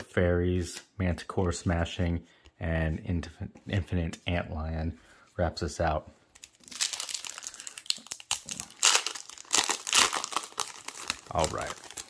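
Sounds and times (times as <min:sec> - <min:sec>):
foil wrapper tearing and crinkling: 0:06.4 - 0:12.0.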